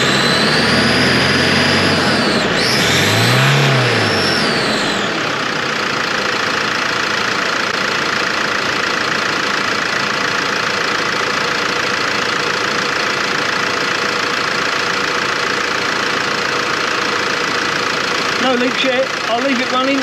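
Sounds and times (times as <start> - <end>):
van engine idling: 0.0 - 20.0.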